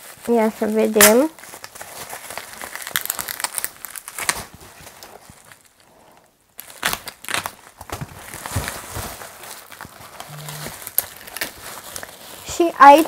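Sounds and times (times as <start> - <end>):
bubble wrap crinkling: 0.0 - 13.0.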